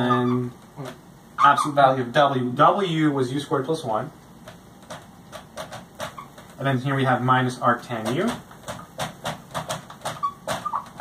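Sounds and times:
marker squeaks: 0.0s - 1.9s, 5.3s - 6.6s, 8.2s - 11.0s
marker writing on a whiteboard: 8.1s - 11.0s.

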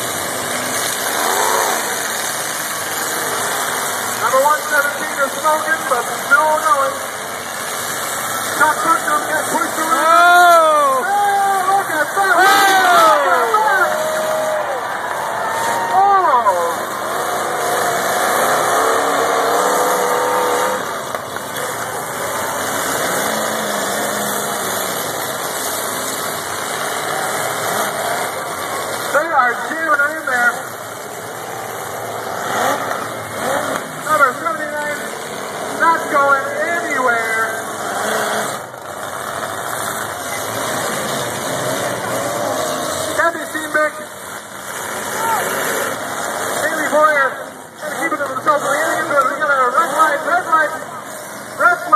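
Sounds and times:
car engines revving: 0.0s - 51.9s
voices: 1.0s - 51.9s.

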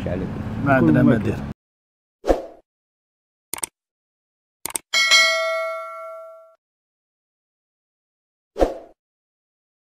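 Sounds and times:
bright notification bell ding: 5.0s - 6.6s.

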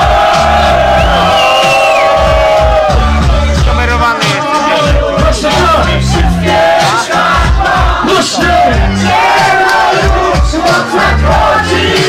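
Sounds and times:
crowd shouting and yelling: 0.0s - 12.0s
hip-hop beat with deep bass: 0.0s - 12.0s.

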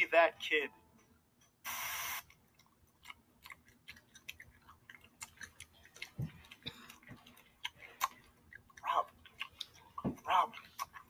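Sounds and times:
gum chewing with wet smacks: 2.3s - 11.0s.

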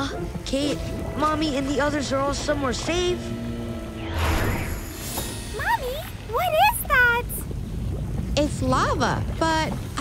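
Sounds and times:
sustained music: 0.0s - 7.4s.

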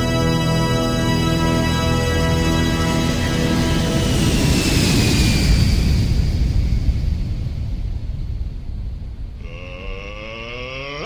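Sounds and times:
jet flyby sound effect: 3.0s - 8.6s.

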